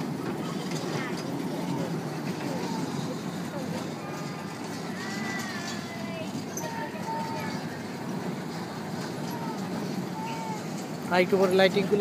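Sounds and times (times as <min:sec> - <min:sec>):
crowd chatter and calls: 0:00.0 - 0:12.0
ride vehicles rumbling: 0:00.0 - 0:12.0.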